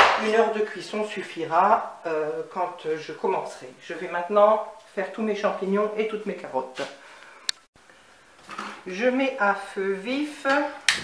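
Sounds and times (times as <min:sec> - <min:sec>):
person speaking: 0:00.0 - 0:07.1, 0:08.6 - 0:10.9.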